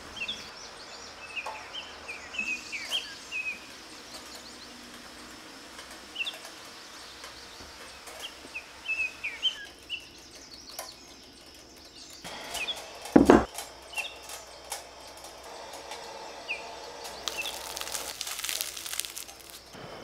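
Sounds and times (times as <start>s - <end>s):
small birds chirping: 0.0s - 20.0s.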